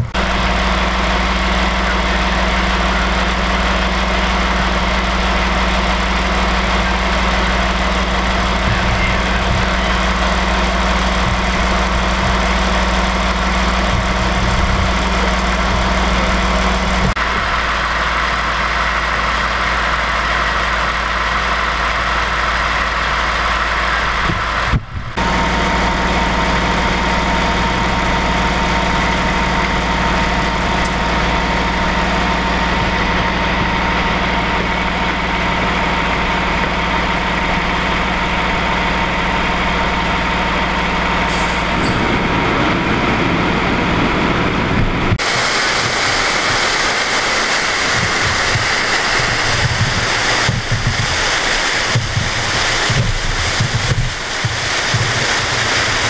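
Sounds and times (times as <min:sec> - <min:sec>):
diesel engine idling: 0:00.0 - 0:56.0
water rushing: 0:00.0 - 0:56.0.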